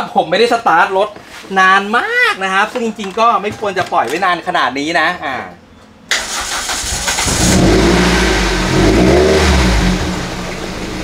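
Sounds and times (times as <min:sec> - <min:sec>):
car starter cranking: 0:06.1 - 0:08.2
car engine running: 0:06.8 - 0:11.0.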